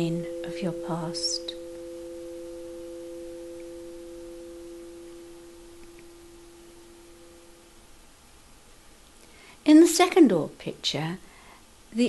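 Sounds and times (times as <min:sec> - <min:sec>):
held pure tones: 0:00.0 - 0:09.7.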